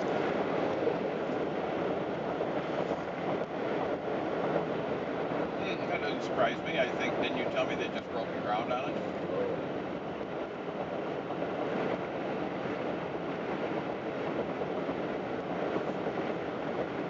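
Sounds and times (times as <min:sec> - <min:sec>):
moving vehicle rumble: 0:00.0 - 0:17.0.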